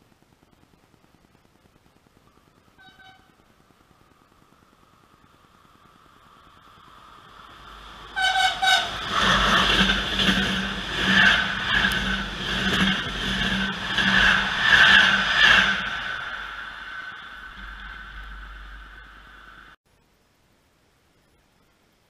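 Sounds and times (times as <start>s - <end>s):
train rolling rumble: 2.2s - 19.8s
train horn blasts: 2.8s - 3.4s, 8.1s - 12.3s
wheels clattering over rails: 7.0s - 19.8s.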